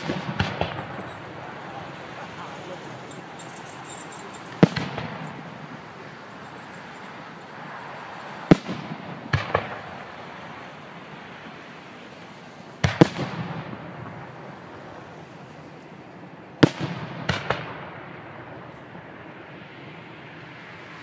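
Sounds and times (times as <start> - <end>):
fireworks bangs with echo: 0.0 - 11.6, 12.3 - 19.6.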